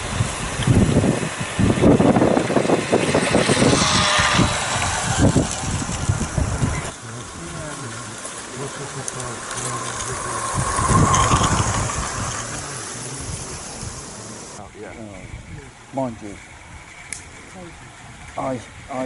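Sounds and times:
model train wheels rumbling on rails: 0.0 - 14.6.

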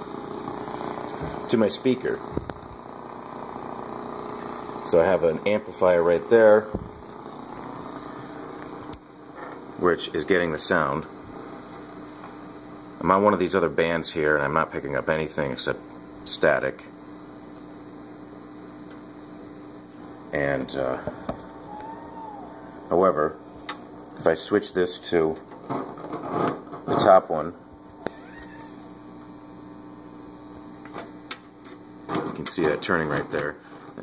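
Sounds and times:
mains hum: 0.0 - 34.0
whistle rising and falling: 21.6 - 22.6.

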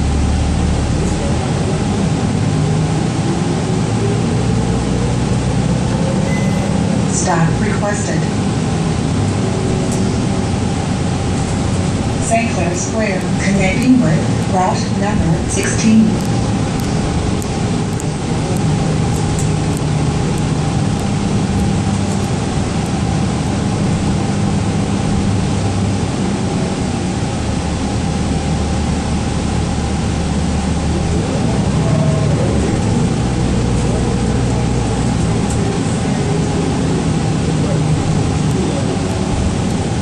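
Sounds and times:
bus engine drone: 0.0 - 40.0
road noise: 0.0 - 40.0.

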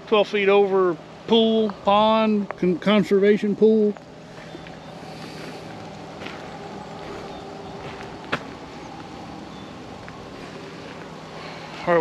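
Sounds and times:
soft outdoor hiss: 0.0 - 12.0
steady motor hum: 0.0 - 12.0.

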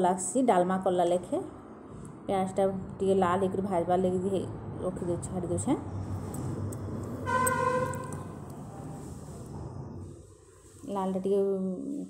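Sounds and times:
vehicle horn: 7.2 - 8.4.

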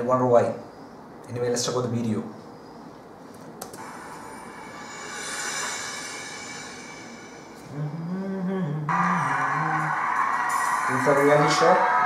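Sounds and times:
shimmering whoosh: 3.8 - 7.9, 8.9 - 12.0.

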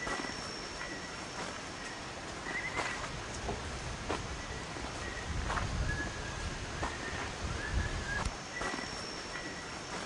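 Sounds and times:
high chirp: 0.0 - 3.1, 4.4 - 10.0
elephant footsteps in undergrowth: 0.0 - 10.0.

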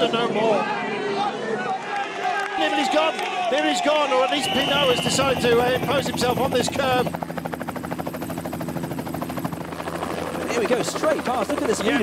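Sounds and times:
helicopter rotor chopping: 3.8 - 12.0.

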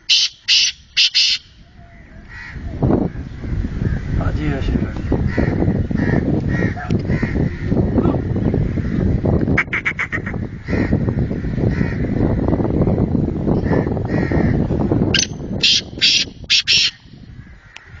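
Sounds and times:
bird calling in high notes: 0.0 - 2.3, 15.2 - 17.1.

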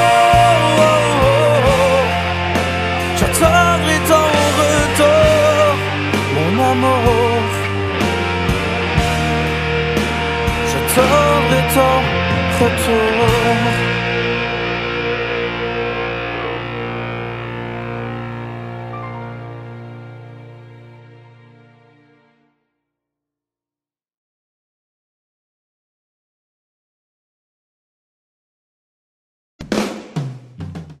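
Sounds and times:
person singing: 0.0 - 8.3, 10.5 - 14.2
rock guitar chord ringing out: 0.0 - 22.1
drum kit hits: 29.6 - 31.0.

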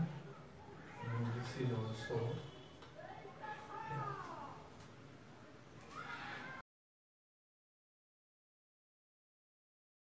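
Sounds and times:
faint voices: 0.0 - 4.8.

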